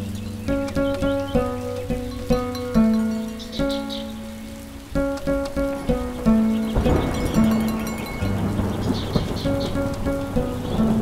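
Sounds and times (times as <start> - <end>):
plucked lyre strings: 0.0 - 11.0.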